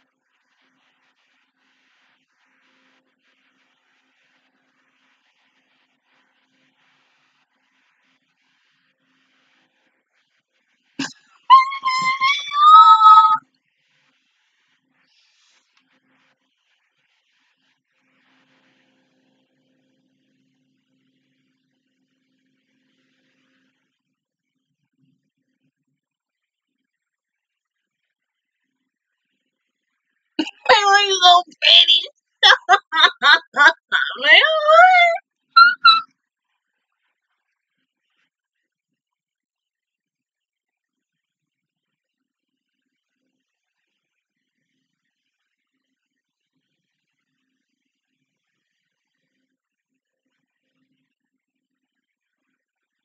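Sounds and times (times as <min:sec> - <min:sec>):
high-pitched vocal squeal: 0:11.0 - 0:13.4, 0:30.4 - 0:36.0
short squeaks: 0:11.0 - 0:13.4
woman laughing excitedly: 0:11.0 - 0:13.4, 0:30.4 - 0:36.0.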